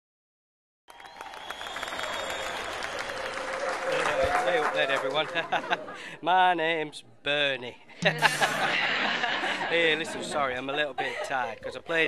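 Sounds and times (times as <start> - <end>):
small audience applauding: 0.9 - 6.1.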